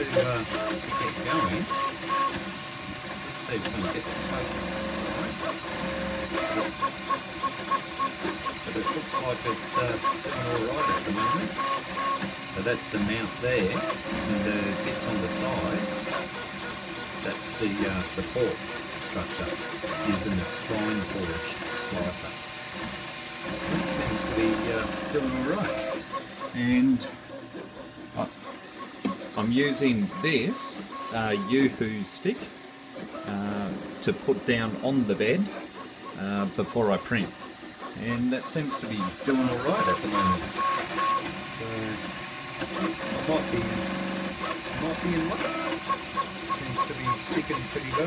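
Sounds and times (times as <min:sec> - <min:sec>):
stepper motor tones: 0:00.0 - 0:48.0.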